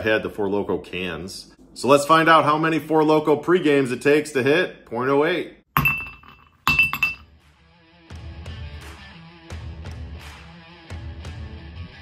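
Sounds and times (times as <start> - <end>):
glass clinking: 5.8 - 7.3.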